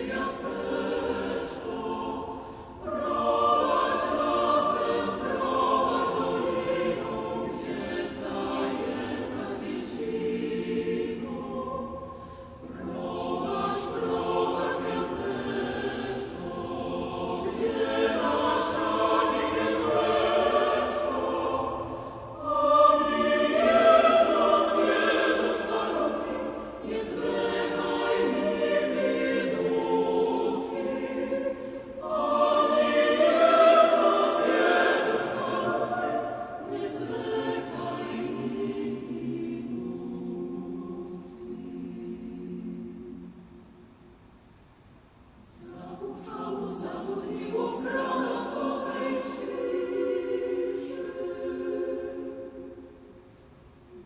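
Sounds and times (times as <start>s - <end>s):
mixed choir singing a carol: 0.0s - 44.3s, 45.2s - 54.0s.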